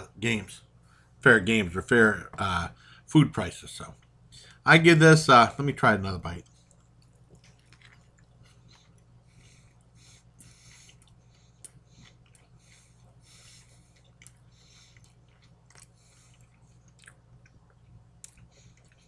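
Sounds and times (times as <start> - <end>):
steady low hum: 0.0 - 19.0
chewing with wet mouth sounds: 6.4 - 19.0.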